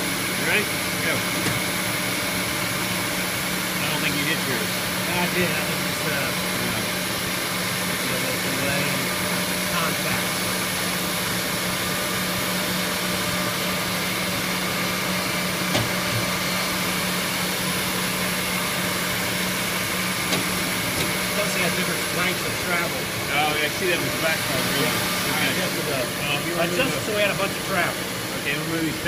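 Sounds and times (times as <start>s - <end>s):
drilling machines droning: 0.0s - 29.0s.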